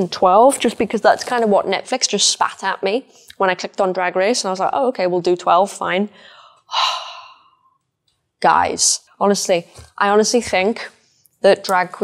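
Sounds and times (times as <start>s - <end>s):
woman sighing: 6.7s - 7.7s.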